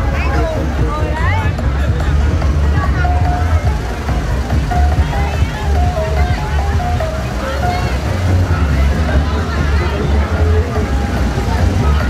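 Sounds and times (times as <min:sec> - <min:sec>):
chatter of large crowd: 0:00.0 - 0:12.0
loud music with heavy bass beat: 0:00.0 - 0:12.0.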